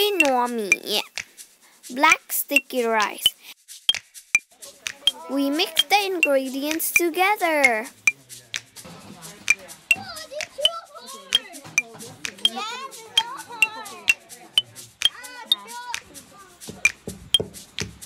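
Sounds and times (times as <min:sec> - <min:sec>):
background music: 0:00.0 - 0:04.0, 0:04.7 - 0:18.0
children chattering: 0:05.0 - 0:08.0, 0:10.0 - 0:14.5.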